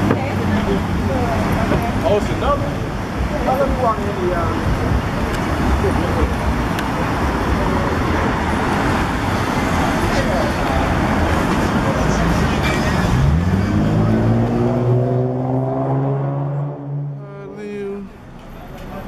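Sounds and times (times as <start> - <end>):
street traffic: 0.0 - 19.0
vehicle engine revving: 4.6 - 17.2.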